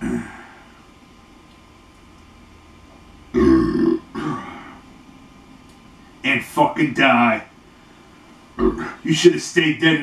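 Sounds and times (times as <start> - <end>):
man burping loudly: 3.3 - 4.8, 8.6 - 9.0.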